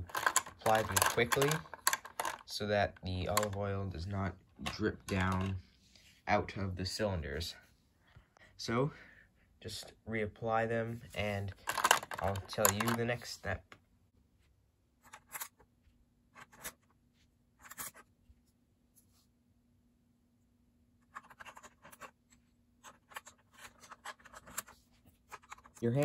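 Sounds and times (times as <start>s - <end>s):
plastic toy bricks clicking and scraping: 0.0s - 3.7s, 4.6s - 5.6s, 11.5s - 13.3s, 21.1s - 22.1s, 22.8s - 26.0s.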